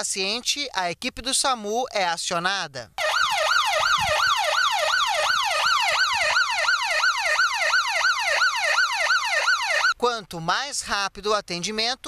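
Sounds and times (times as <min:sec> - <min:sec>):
ambulance siren yelping: 0:03.0 - 0:10.0.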